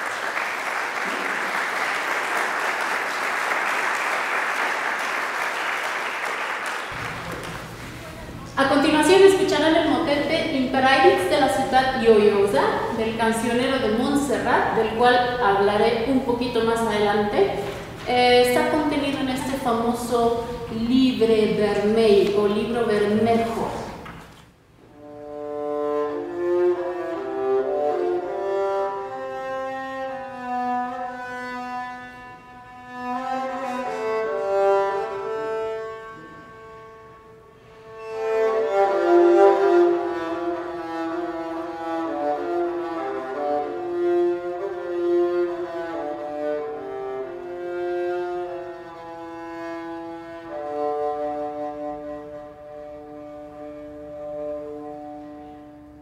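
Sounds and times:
medieval music on bowed strings: 0:25.0 - 0:55.8.

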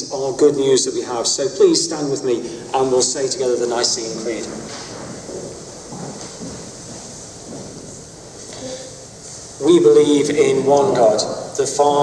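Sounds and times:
people standing up rustling: 0:03.6 - 0:11.0.

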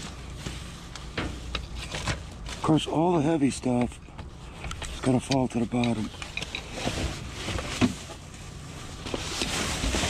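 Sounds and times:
trash rustling and clattering: 0:00.0 - 0:10.0.

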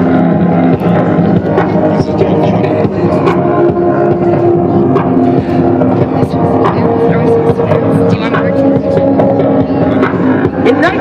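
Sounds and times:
droning synth notes: 0:00.0 - 0:11.0.

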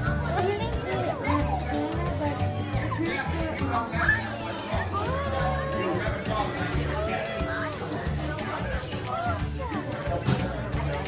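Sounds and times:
children chattering and calling: 0:00.0 - 0:11.0
music playing: 0:00.0 - 0:11.0.

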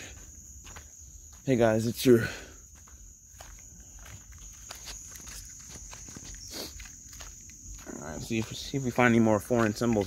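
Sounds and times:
crickets chirring: 0:00.0 - 0:10.0
footsteps on a trail: 0:00.0 - 0:10.0.

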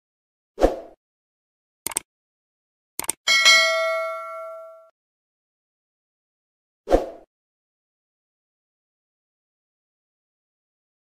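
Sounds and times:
bell ding: 0:03.3 - 0:04.9.

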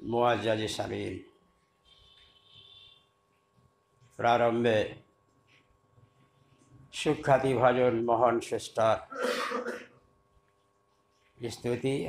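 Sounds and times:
man clearing his throat: 0:09.1 - 0:10.0.

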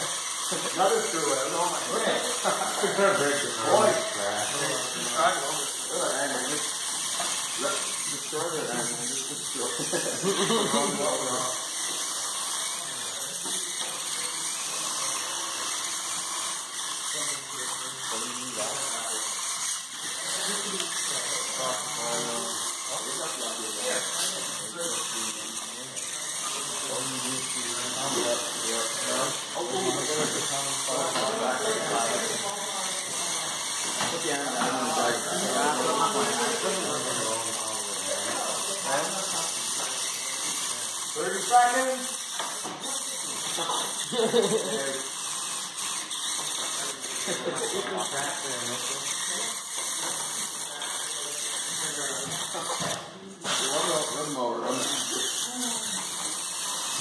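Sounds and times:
people talking indistinctly: 0:00.0 - 0:57.0.

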